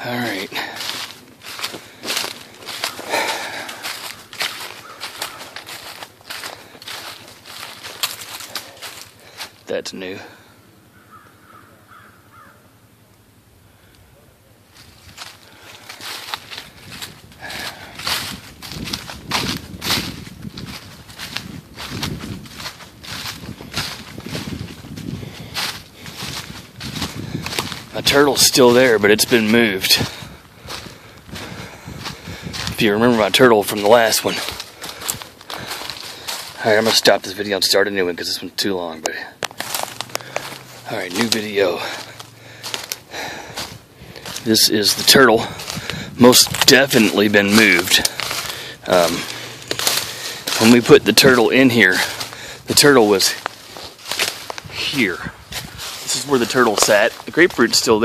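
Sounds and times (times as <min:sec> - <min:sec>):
footsteps crunching dry leaves: 0:00.0 - 0:12.5, 0:14.6 - 0:58.0.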